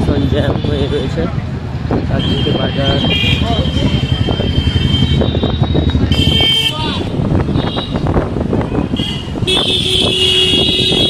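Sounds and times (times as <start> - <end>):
motorcycle engine: 0.0 - 11.0.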